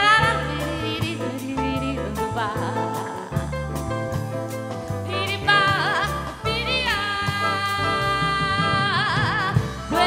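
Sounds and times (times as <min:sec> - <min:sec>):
drum kit: 0:00.0 - 0:10.0
electric bass: 0:00.0 - 0:10.0.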